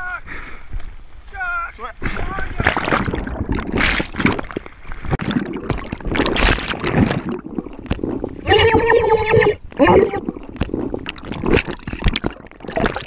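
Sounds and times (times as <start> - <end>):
water splashing and sloshing: 0.6 - 13.0.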